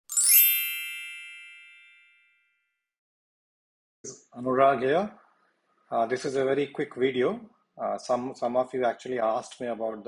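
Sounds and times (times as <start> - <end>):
bright high chime: 0.0 - 2.6.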